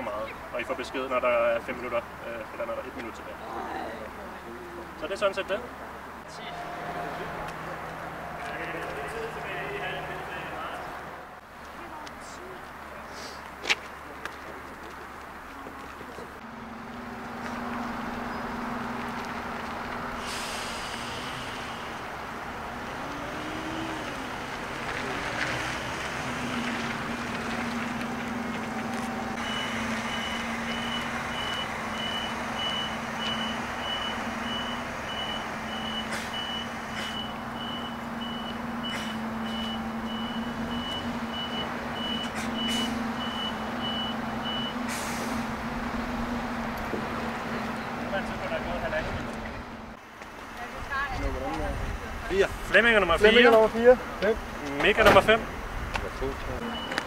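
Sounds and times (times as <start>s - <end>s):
bus engine running: 0.0s - 57.0s
reversing alarm beeping: 6.3s - 10.3s, 29.3s - 44.8s, 56.6s - 57.0s.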